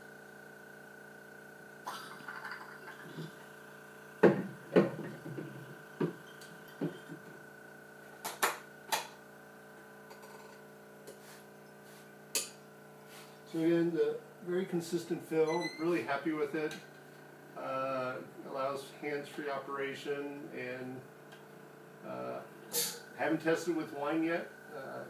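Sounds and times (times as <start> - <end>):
steady machine hum: 0.0 - 25.0.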